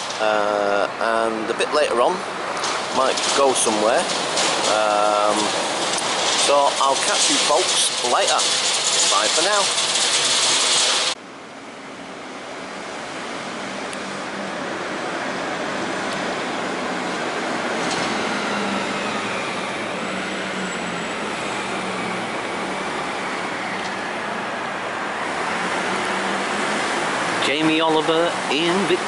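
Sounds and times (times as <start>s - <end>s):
city traffic roar: 0.0s - 29.0s.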